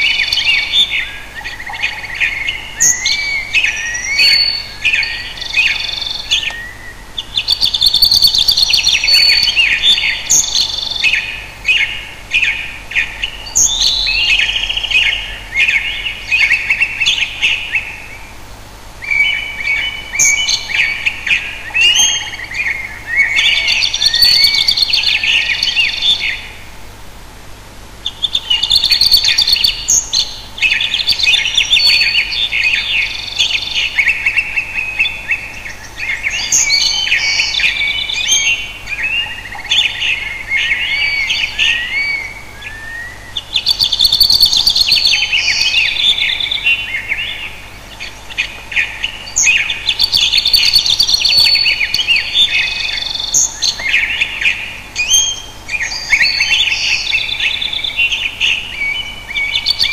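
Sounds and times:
bird chirping and warbling: 0.0s - 18.2s, 19.0s - 26.6s, 28.1s - 59.9s.

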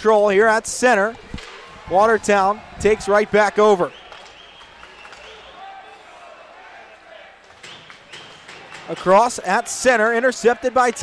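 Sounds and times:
hockey game sounds on ice: 0.0s - 11.0s
distant crowd voices: 1.0s - 11.0s.

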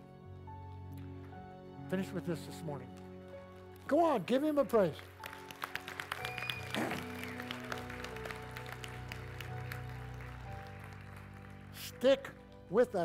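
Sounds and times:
soft keyboard chords: 0.0s - 13.0s
congregation clapping: 2.3s - 13.0s.

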